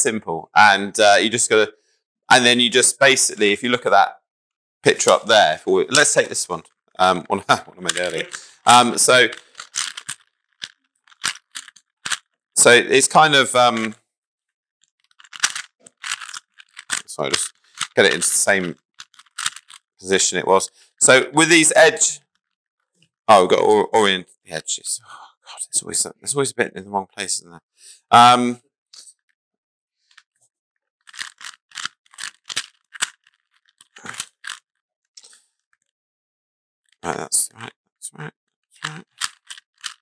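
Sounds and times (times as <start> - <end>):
plastic puzzle cube clicking: 7.8 - 12.3, 15.0 - 19.9, 31.1 - 34.6, 38.8 - 40.0.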